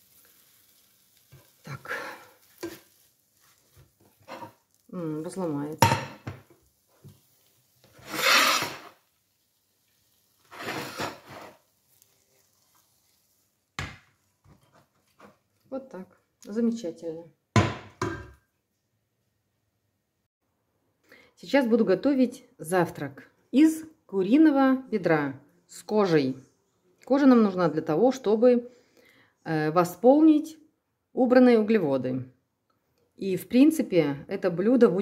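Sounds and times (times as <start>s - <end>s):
spatula scraping frying pan: 2.4s - 4.9s, 7.0s - 9.1s, 10.4s - 13.4s.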